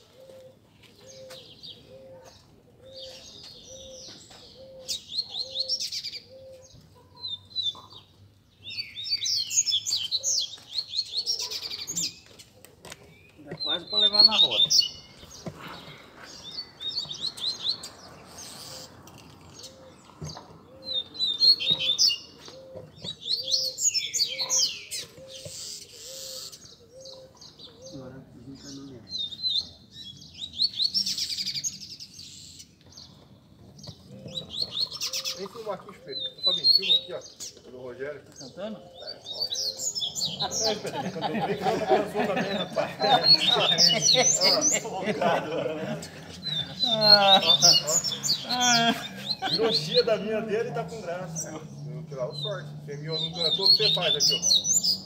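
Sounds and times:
birds twittering song: 0:00.0 - 0:55.0.

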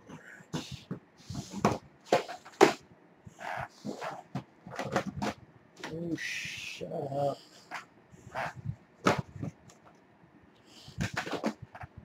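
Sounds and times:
plastic cases clattering: 0:00.5 - 0:02.9, 0:03.7 - 0:06.0, 0:09.0 - 0:10.0, 0:11.0 - 0:12.0.

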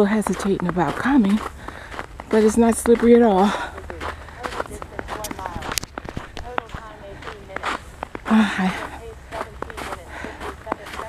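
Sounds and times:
footsteps crunching on snow: 0:00.0 - 0:11.0.

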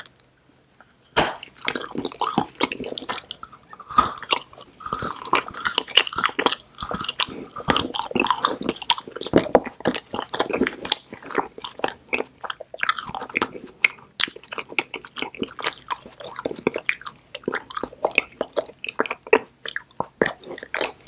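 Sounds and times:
close chewing: 0:00.0 - 0:21.0.

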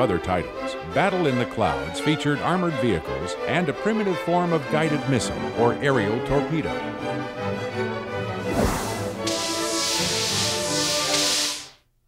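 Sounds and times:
orchestral film music: 0:00.4 - 0:11.4
sharp whoosh: 0:08.5 - 0:11.2
loud rushing hiss: 0:08.5 - 0:11.8.

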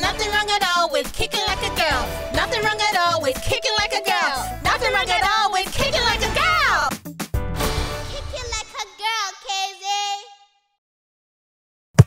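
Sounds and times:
child singing: 0:00.0 - 0:06.5.

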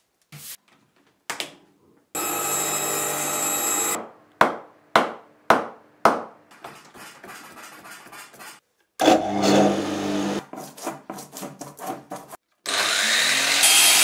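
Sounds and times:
electric workshop motor starting: 0:02.2 - 0:04.0, 0:09.0 - 0:10.4, 0:12.7 - 0:14.0
woodworking machine running: 0:02.2 - 0:04.0.

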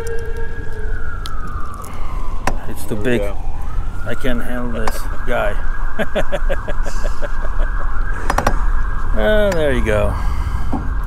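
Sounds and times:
steady low rumble: 0:00.0 - 0:11.0
high whine rising and sinking: 0:06.6 - 0:11.0.

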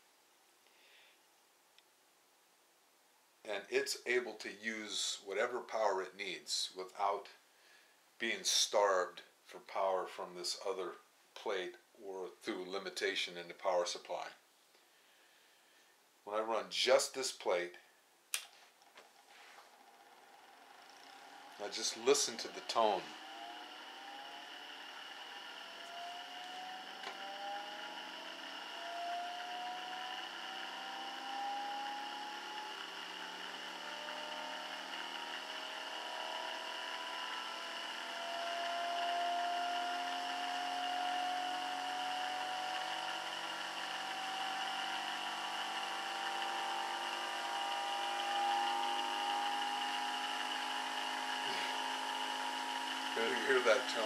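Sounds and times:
steady high whine: 0:19.1 - 0:54.0
motor whirring: 0:19.6 - 0:54.0.

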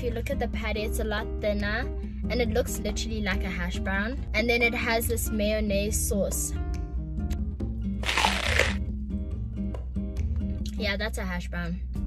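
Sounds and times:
crunchy bite into burger: 0:08.0 - 0:08.8.

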